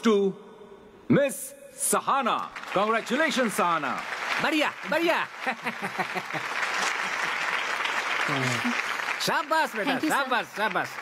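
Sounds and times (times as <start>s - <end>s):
audience applauding: 2.4s - 11.0s
person speaking: 9.6s - 10.6s.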